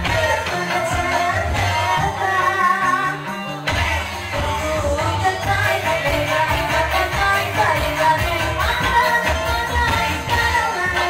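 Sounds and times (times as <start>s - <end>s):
live band instrumental music: 0.0s - 11.0s.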